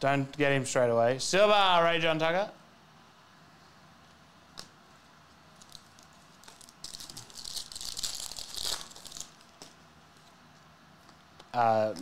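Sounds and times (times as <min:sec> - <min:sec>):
foil wrapper crinkling: 0:05.5 - 0:10.3.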